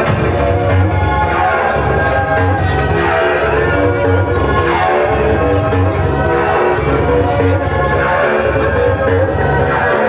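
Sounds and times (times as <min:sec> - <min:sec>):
heavy bass beat: 0:00.0 - 0:10.0
horn-like synth chords: 0:00.0 - 0:10.0.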